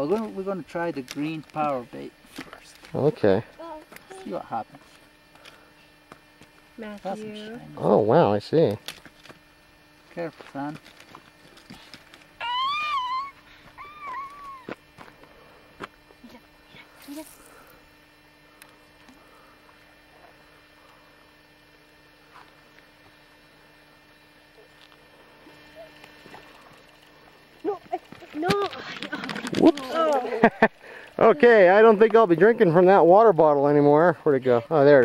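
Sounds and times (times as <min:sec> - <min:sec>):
child squealing: 0:12.4 - 0:14.7
child crying: 0:12.4 - 0:14.8.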